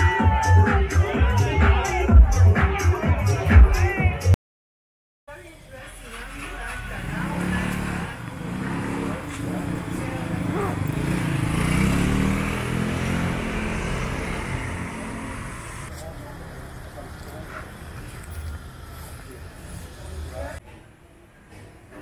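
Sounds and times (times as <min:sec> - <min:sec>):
motorbike engine passing: 0:05.7 - 0:20.6.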